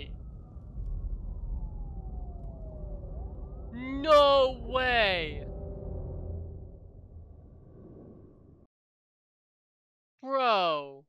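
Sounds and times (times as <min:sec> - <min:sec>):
emergency siren wailing: 0:00.0 - 0:08.4
low rumble: 0:00.0 - 0:08.7.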